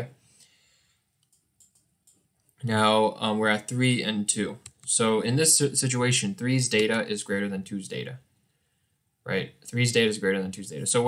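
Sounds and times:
faint computer mouse clicks: 1.2s - 2.2s.

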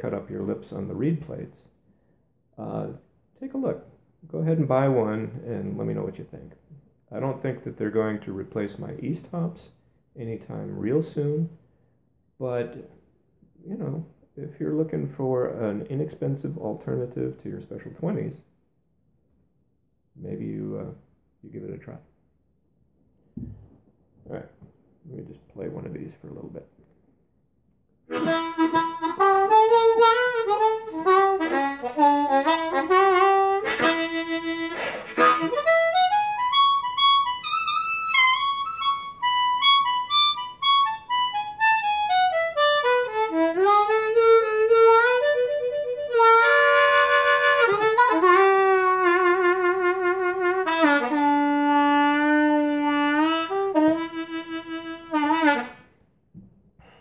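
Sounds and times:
harmonica solo: 28.1s - 55.9s.

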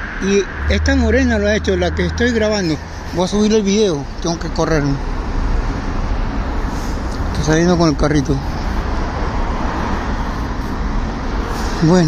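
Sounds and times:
cars passing on a street: 0.0s - 12.0s.

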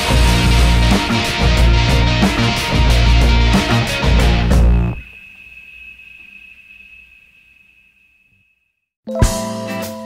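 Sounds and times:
live rock band with electric guitar: 0.0s - 5.0s
thin high ringing tone: 3.5s - 8.9s.

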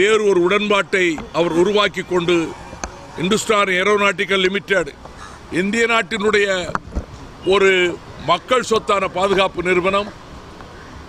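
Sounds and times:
man speaking: 0.0s - 2.6s, 3.2s - 6.8s, 7.4s - 10.1s.

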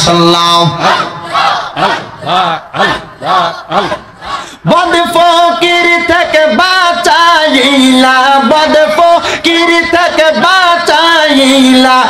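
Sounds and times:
men chanting rhythmically: 0.5s - 12.0s.

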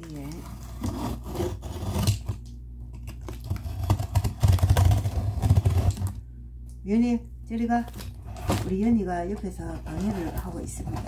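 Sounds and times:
scratching at parcel tape: 3.1s - 6.2s.

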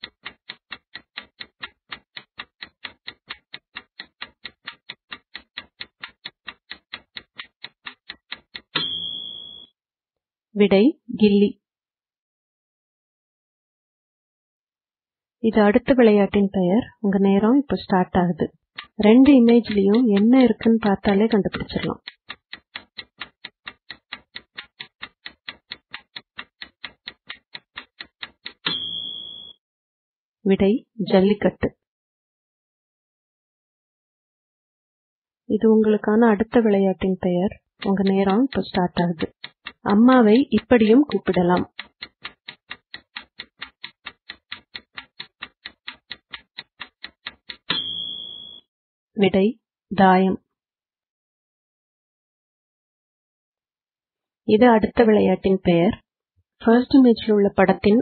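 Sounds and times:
countdown timer ticking: 0.0s - 9.7s, 18.1s - 29.6s, 36.6s - 48.6s
ringing tone: 8.8s - 9.7s, 28.6s - 29.6s, 47.7s - 48.6s.

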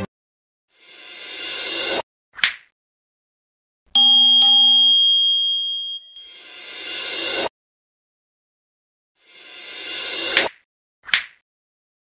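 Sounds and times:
bell-like notification chime: 4.0s - 6.5s.

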